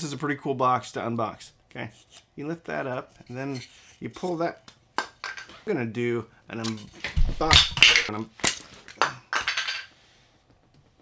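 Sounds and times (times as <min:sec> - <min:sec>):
hard objects clattering: 0:05.0 - 0:05.6, 0:06.8 - 0:09.9.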